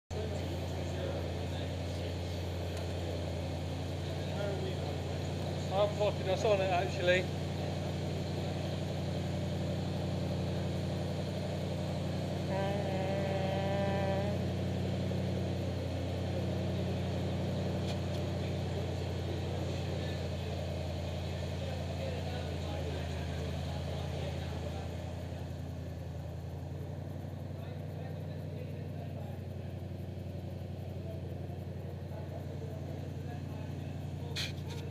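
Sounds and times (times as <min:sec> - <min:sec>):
engine idling: 0:00.1 - 0:34.9
person calling out: 0:12.5 - 0:14.4.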